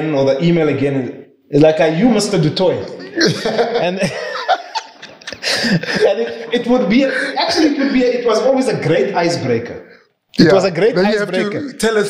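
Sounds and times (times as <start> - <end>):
men laughing: 2.8 - 8.4.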